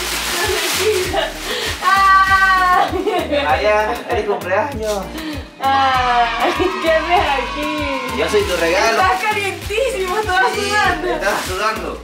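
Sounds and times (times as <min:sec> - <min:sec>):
foil gift wrap crinkling and tearing: 0:00.0 - 0:03.9, 0:06.4 - 0:12.0
background music with a beat: 0:00.0 - 0:12.0
person crying out: 0:01.8 - 0:02.8.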